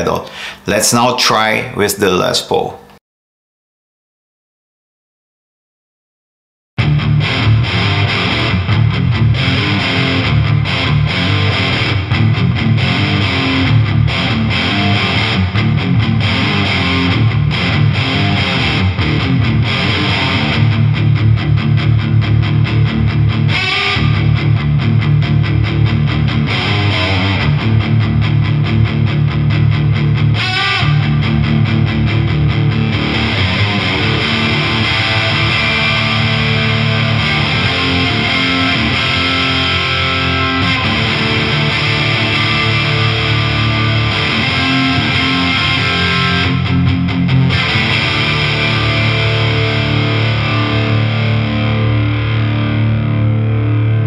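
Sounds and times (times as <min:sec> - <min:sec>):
distorted electric guitar chords: 0:06.8 - 0:54.0.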